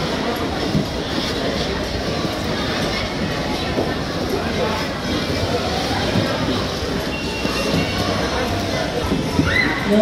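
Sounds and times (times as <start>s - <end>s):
children's voices: 0.0s - 10.0s.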